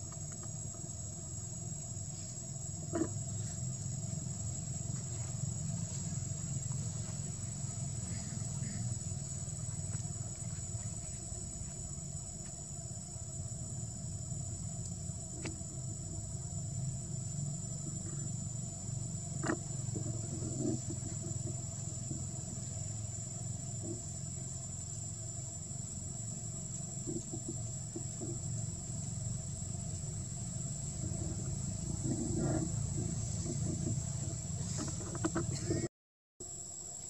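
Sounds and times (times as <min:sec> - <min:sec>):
outdoor background rumble: 0:00.0 - 0:35.9.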